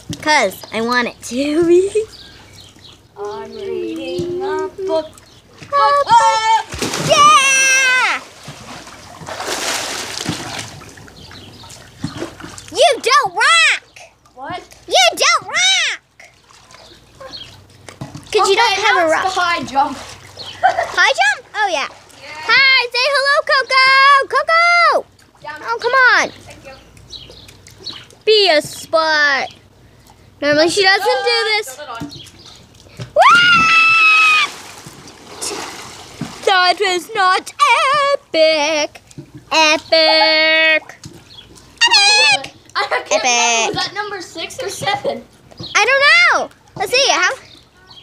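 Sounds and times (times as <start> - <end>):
pool water sloshing and trickling: 0.0 - 48.0
girl screaming: 6.1 - 8.2, 33.2 - 34.6, 41.8 - 42.5.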